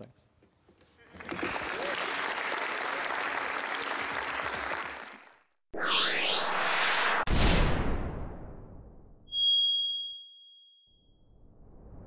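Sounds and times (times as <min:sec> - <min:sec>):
swoosh: 0:05.8 - 0:09.1, 0:11.3 - 0:12.0
bright bell-like ding: 0:09.3 - 0:11.0.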